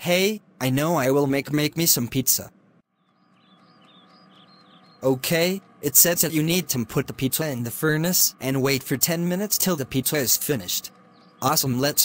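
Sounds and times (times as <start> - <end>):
faint birds chirping: 0.4 - 12.0.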